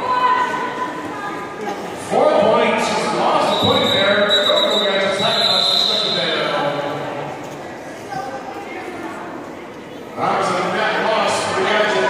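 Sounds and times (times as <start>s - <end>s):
voices echoing in a hall: 0.0s - 12.0s.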